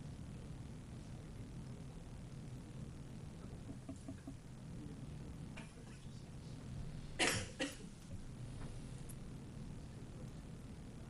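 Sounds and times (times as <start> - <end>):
low room hum: 0.0 - 11.0
person coughing: 7.2 - 7.9.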